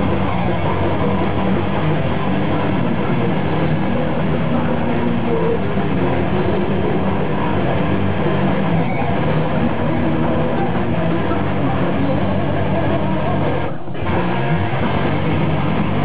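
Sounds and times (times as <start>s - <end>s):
heavy metal band playing live: 0.0s - 16.0s.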